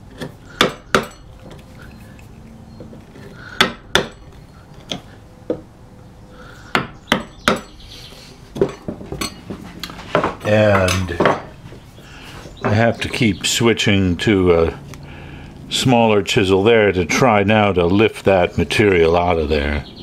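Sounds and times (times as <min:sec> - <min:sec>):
chisel chopping wood: 0:00.1 - 0:01.2, 0:03.5 - 0:04.3, 0:06.7 - 0:07.7.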